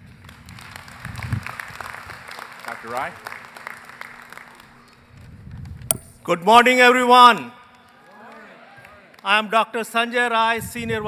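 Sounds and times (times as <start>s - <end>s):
scattered applause: 0.0s - 5.4s, 7.4s - 9.4s
microphone handling pop: 5.8s - 6.3s.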